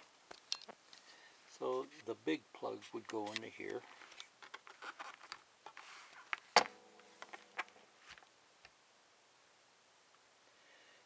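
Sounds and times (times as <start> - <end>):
small clicks and knocks of handling: 0.3 - 1.2, 3.0 - 6.4
faint ringing tone: 6.6 - 8.0.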